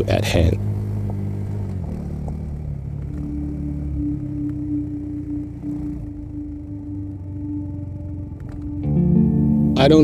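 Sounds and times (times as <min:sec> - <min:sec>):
motorcycle engine drone: 0:00.0 - 0:10.0
held musical tone: 0:02.8 - 0:10.0.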